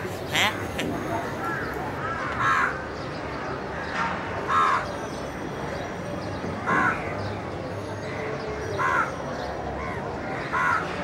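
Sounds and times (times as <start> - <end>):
crows cawing: 0.0 - 2.8, 4.5 - 4.9, 9.8 - 11.0.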